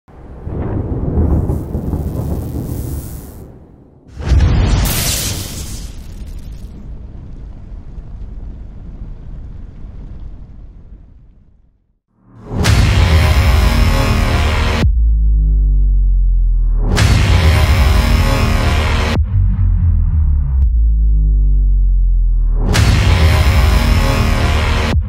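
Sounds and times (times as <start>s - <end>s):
deep rumble: 0.1s - 4.8s, 6.2s - 11.8s, 12.4s - 25.0s
loud boom: 0.1s - 9.5s, 12.4s - 15.2s, 16.8s - 19.5s, 22.6s - 25.0s.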